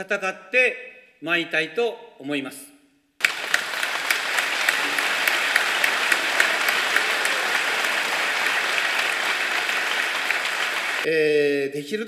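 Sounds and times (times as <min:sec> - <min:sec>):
audience applauding: 0:03.2 - 0:11.1.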